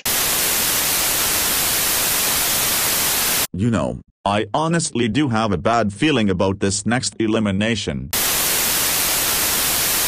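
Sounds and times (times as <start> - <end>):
television static hiss: 0.0 - 3.5, 8.2 - 10.0.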